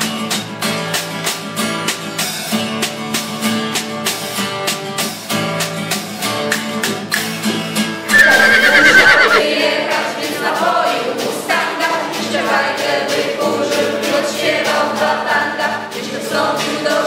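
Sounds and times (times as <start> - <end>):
horse whinnying: 8.1 - 9.4
background music with choral singing: 9.4 - 17.0.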